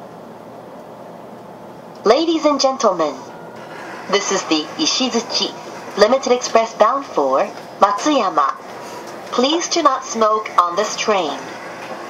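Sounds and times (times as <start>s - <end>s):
spoken train announcement: 2.0s - 12.0s.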